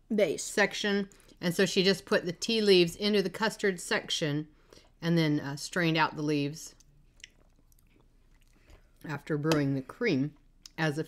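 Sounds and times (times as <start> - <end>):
mouth sounds of eating: 6.8 - 9.1.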